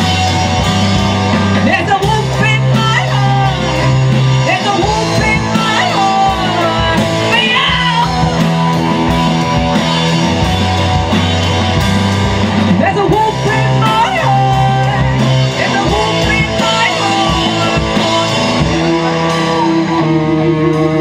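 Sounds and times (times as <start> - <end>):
bass guitar: 0.0 - 21.0
drums: 0.0 - 21.0
electric guitars: 0.0 - 21.0.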